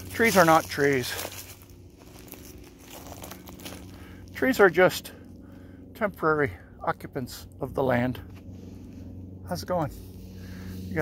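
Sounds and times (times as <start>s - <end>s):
footsteps on dry leaves: 0.0s - 5.4s, 8.2s - 11.0s
soft low hum: 0.0s - 11.0s.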